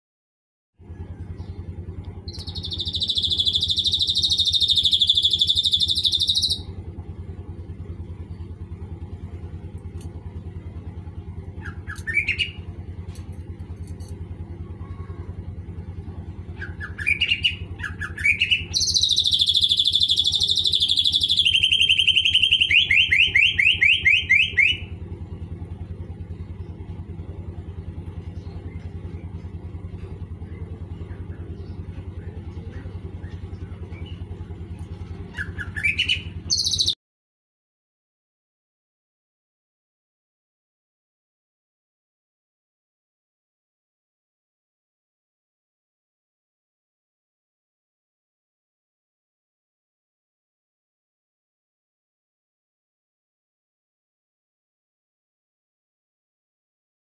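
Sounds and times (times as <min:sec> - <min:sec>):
steady low hum: 0:00.8 - 0:37.0
bird singing and chirping: 0:00.9 - 0:06.8, 0:11.4 - 0:12.8, 0:15.8 - 0:25.2, 0:25.8 - 0:37.0.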